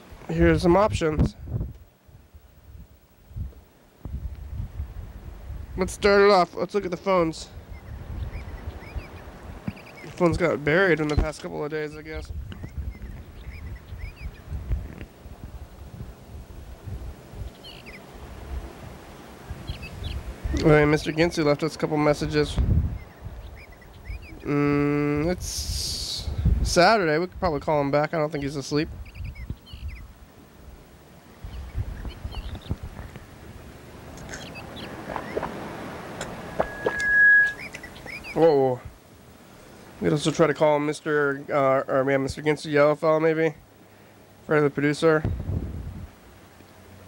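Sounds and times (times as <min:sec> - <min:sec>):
faint bird chirps: 0:07.0 - 0:10.2, 0:10.8 - 0:14.5, 0:17.4 - 0:18.1, 0:19.6 - 0:21.4, 0:22.9 - 0:25.2, 0:28.0 - 0:30.1, 0:31.4 - 0:33.2, 0:34.2 - 0:35.5, 0:36.2 - 0:38.8
short high chirps: 0:36.4 - 0:38.3
steady electronic beep: 0:36.5 - 0:37.7.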